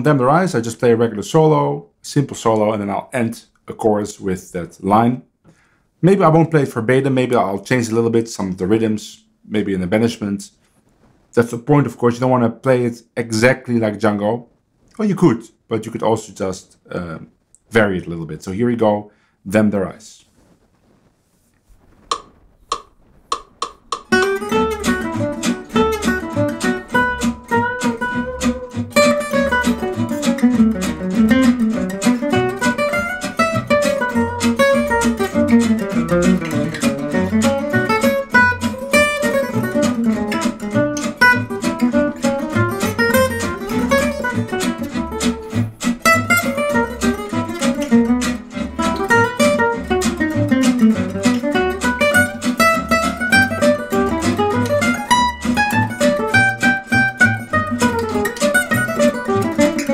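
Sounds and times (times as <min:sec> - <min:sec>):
rhythm guitar strumming: 0:00.0 - 0:10.3, 0:21.9 - 0:59.9
jazz guitar swing solo: 0:21.8 - 0:59.9
bass line: 0:24.1 - 0:59.9.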